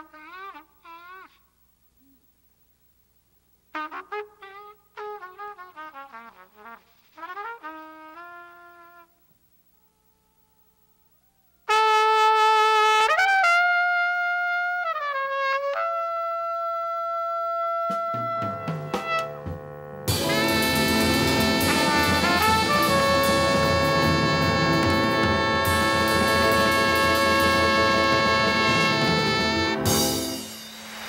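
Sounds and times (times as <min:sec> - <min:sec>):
jazz trumpet playing: 0:00.0 - 0:01.4, 0:03.7 - 0:09.2, 0:11.7 - 0:31.0
band with drums and bass: 0:17.9 - 0:31.0.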